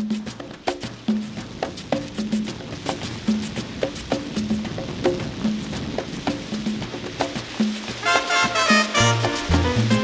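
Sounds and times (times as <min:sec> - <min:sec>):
latin percussion rhythm: 0:00.0 - 0:10.0.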